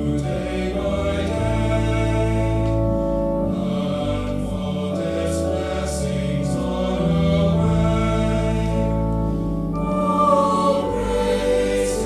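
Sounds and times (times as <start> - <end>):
choir singing in harmony: 0.0 - 12.0.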